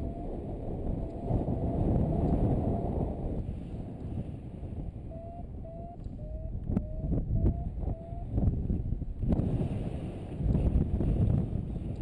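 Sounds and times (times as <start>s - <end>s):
variometer beeping rising in pitch: 0.0s - 0.4s, 5.1s - 8.4s
wind buffeting microphone: 0.0s - 12.0s.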